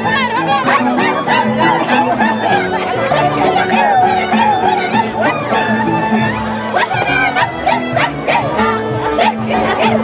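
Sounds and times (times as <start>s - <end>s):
violins playing: 0.0s - 10.0s
women singing in high voices: 0.0s - 10.0s
harp playing: 0.8s - 9.8s.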